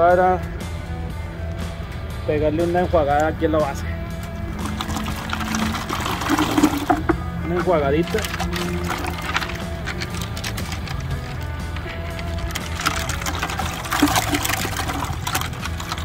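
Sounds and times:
background music: 0.0 - 16.0
water sloshing in a plastic bucket: 3.2 - 16.0.

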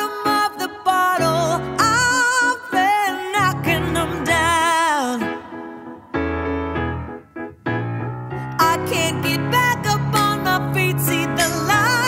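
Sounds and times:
piano playing chords: 0.0 - 12.0.

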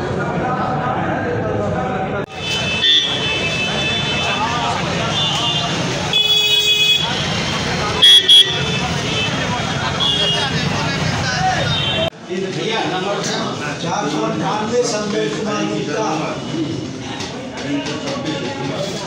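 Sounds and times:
street crowd chattering: 0.0 - 19.0
vehicle horns honking: 2.3 - 10.8, 11.5 - 12.1.

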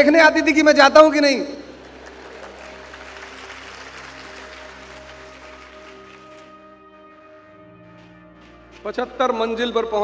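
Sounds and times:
soft background music: 0.0 - 10.0
faint audience applause: 1.7 - 6.8.

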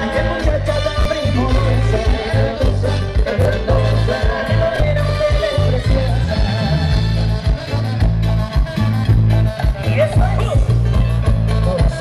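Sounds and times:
bass line: 0.0 - 12.0
live band playing dance music: 0.0 - 12.0
steady drum beat: 0.0 - 12.0.

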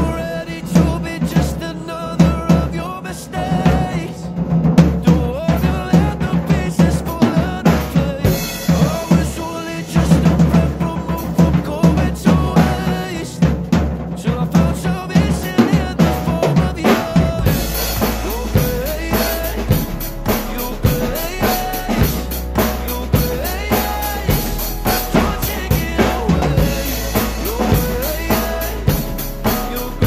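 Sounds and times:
drum kit playing: 0.0 - 30.0
pop ballad backing track: 0.0 - 30.0.

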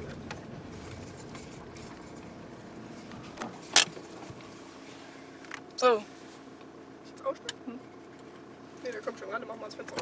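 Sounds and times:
car cabin low rumble: 0.0 - 10.0.

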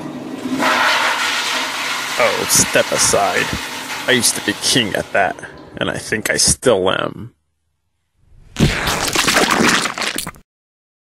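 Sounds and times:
toilet flushing: 0.0 - 5.9.

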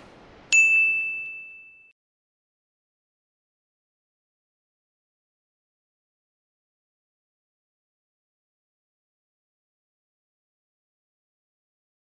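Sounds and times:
high-pitched chime ding: 0.5 - 2.0.

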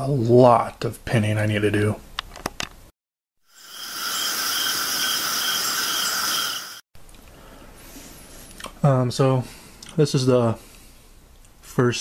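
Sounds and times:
insects buzzing and trilling: 3.5 - 6.8.

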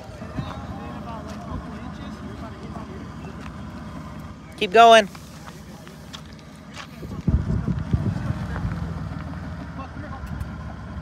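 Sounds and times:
truck engine rumbling: 0.0 - 11.0.

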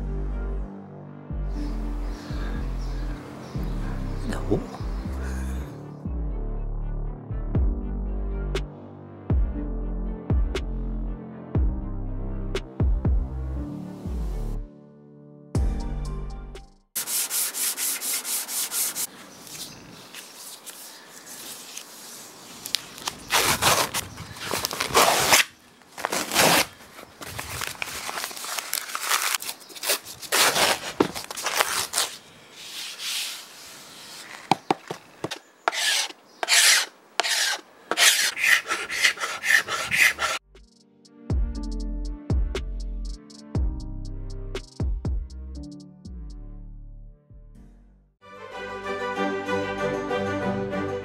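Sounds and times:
music: 0.0 - 17.0, 40.4 - 51.0
sandpaper rubbing on wood: 17.0 - 19.1, 32.6 - 34.4, 35.2 - 40.4.

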